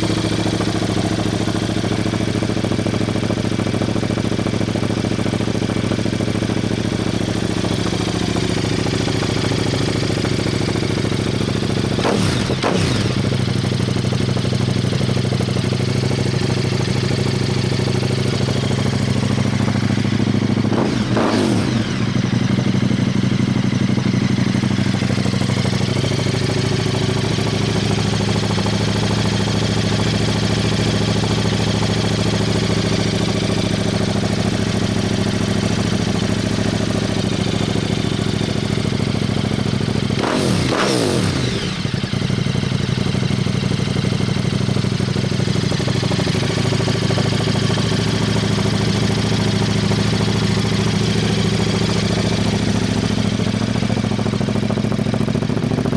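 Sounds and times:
motorcycle engine idling: 0.0s - 55.9s
engine throttle blips: 11.9s - 13.6s.

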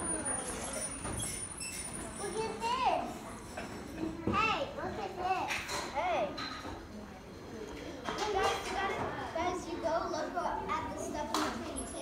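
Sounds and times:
children talking and exclaiming: 0.0s - 12.0s.

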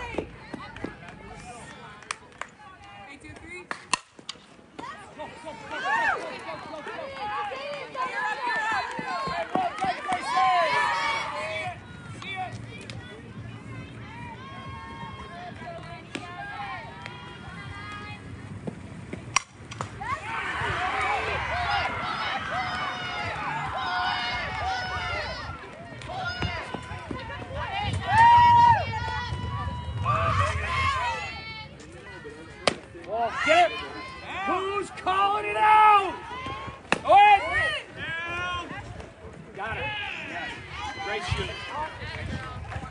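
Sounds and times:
crowd shouting and cheering: 0.0s - 3.6s, 4.8s - 42.9s
bat hitting ball: 19.2s - 20.0s.

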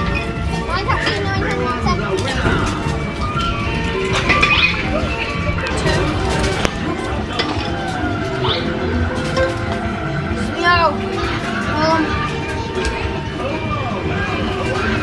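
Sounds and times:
arcade machines electronic music: 0.0s - 15.0s.

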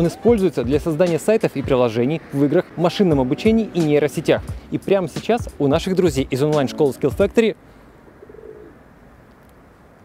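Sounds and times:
pigeon cooing: 8.2s - 8.8s.

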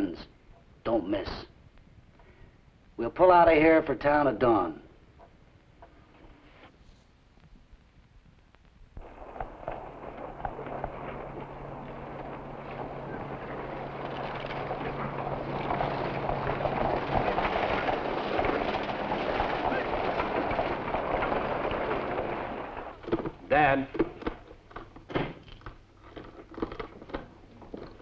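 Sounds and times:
low steady hum: 4.0s - 28.0s
horses' hooves clattering: 9.0s - 24.7s.

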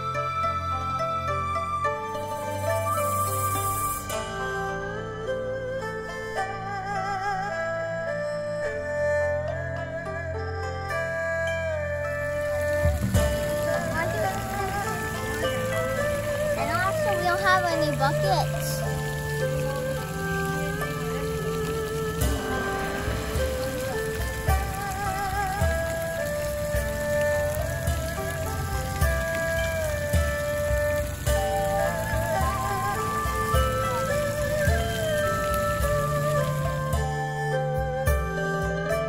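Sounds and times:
pond fountain splashing: 0.0s - 39.0s
soft background music: 0.0s - 39.0s.

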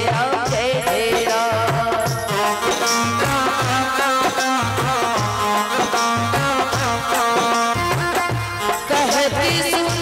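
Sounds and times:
steady drum beat: 0.0s - 10.0s.

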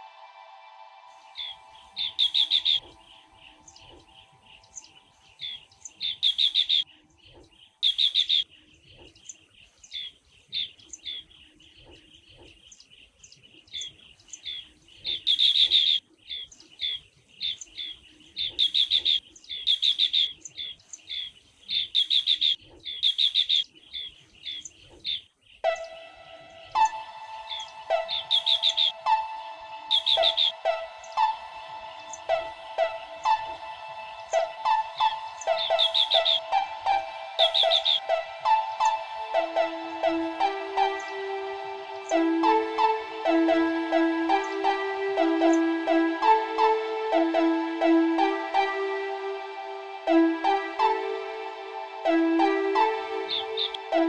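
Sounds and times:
sustained music tone: 0.0s - 6.8s, 25.6s - 54.0s
music track: 0.0s - 6.9s, 25.6s - 54.0s
soft bird chirps: 1.2s - 41.4s, 53.1s - 53.9s
bird trilled calls: 1.3s - 41.3s, 52.8s - 53.9s.

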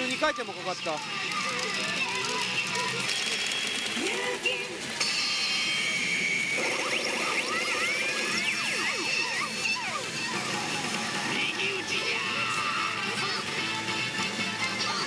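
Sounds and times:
electronic game machine music: 0.0s - 15.0s.

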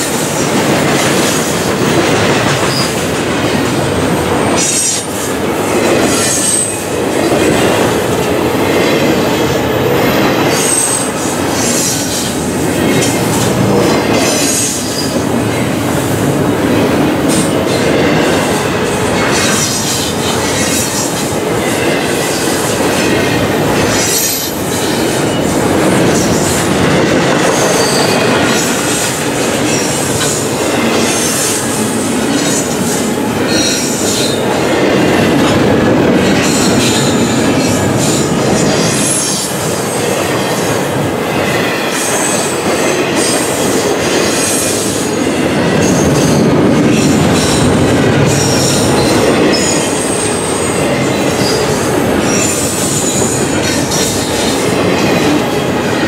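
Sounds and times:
train wheels rumbling on rails: 0.0s - 56.0s.

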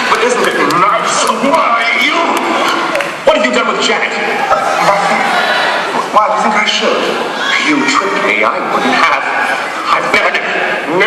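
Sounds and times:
audience noise: 0.0s - 11.0s
voices talking in echoing hall: 0.0s - 11.0s.

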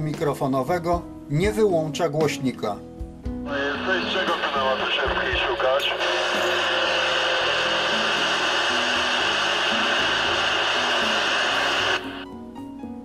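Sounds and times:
soft background music: 0.0s - 13.0s
radio speaker receiver hiss: 3.5s - 12.2s.

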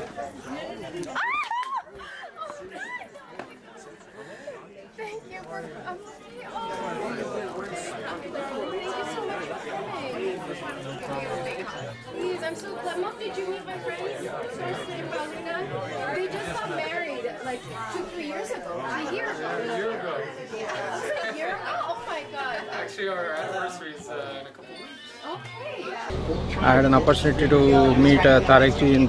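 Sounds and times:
chatter of many people: 0.0s - 29.0s
background music: 26.1s - 29.0s.

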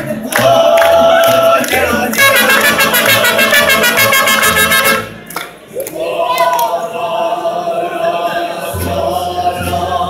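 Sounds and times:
strummed guitars: 0.0s - 5.3s
trumpet: 2.1s - 5.3s.

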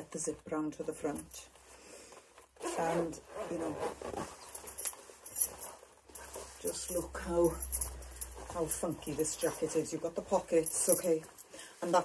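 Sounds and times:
anorak fabric rustling: 0.0s - 12.0s
jacket zipping: 2.5s - 10.9s.

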